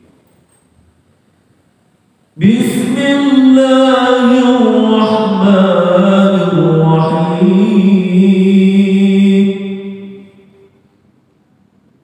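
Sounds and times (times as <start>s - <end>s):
man chanting: 2.4s - 10.7s.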